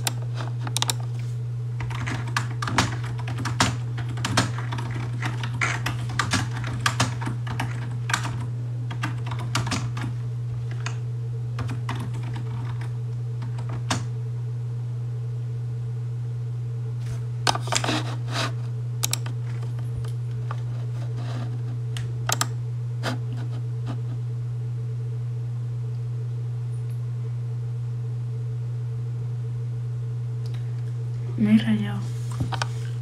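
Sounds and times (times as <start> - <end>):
keyboard typing clicks: 0.0 - 1.0, 1.8 - 10.1, 19.0 - 19.7, 22.3 - 22.5
steady low hum: 0.0 - 33.0.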